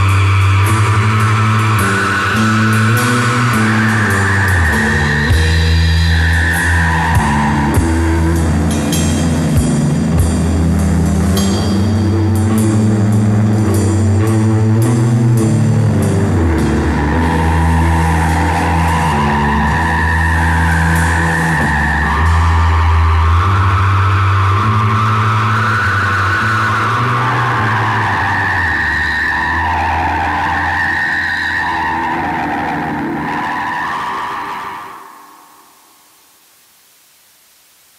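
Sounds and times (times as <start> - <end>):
distorted electric guitar drone: 0.0 - 34.7
guitar feedback squeals: 0.0 - 35.7
tape hiss: 0.0 - 37.9.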